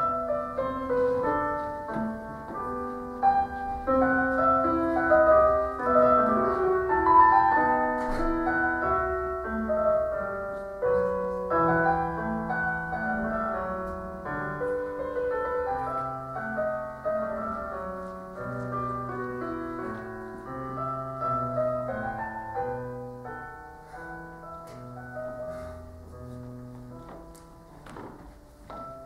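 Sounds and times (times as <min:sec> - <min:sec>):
piano music: 0:00.0 - 0:29.0.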